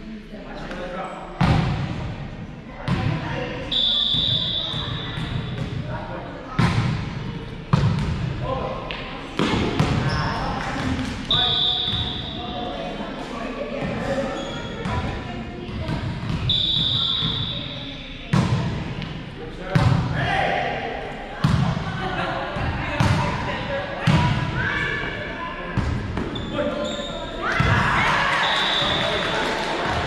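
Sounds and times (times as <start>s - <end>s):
players' voices and shouts: 0.5s - 30.0s
volleyball slaps: 8.9s - 11.3s.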